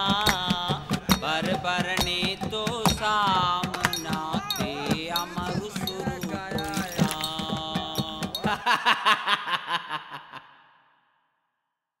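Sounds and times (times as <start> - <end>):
breathy rhythmic beats: 0.0 - 9.2.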